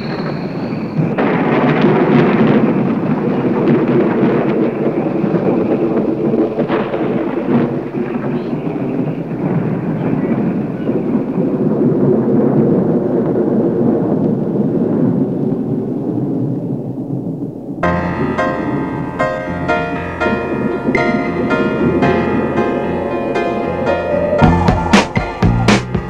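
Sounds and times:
sharp crack: 0:00.0 - 0:13.4
thunder-like rumbling: 0:00.0 - 0:26.0.

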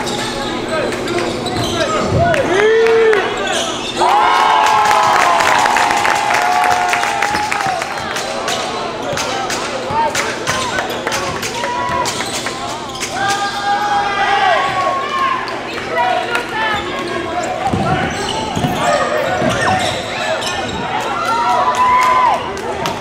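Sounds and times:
sneakers squeaking on floor: 0:00.0 - 0:02.3, 0:03.2 - 0:04.1, 0:08.5 - 0:13.8, 0:14.6 - 0:21.7.

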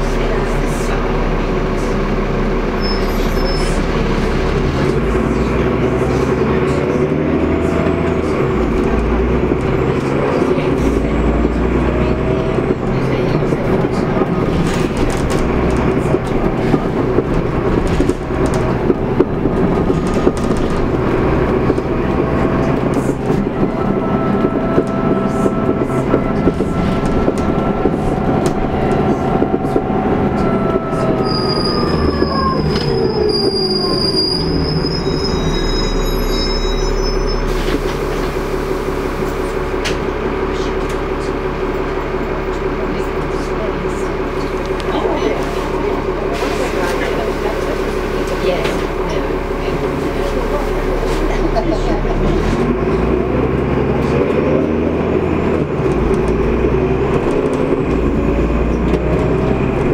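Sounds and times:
brakes squealing: 0:00.0 - 0:59.9
bus engine and road noise: 0:00.0 - 0:59.9
drivetrain whine: 0:00.0 - 0:59.9.

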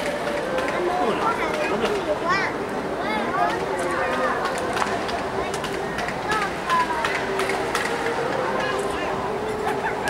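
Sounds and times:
indistinct chatter in a large hall: 0:00.0 - 0:10.0.

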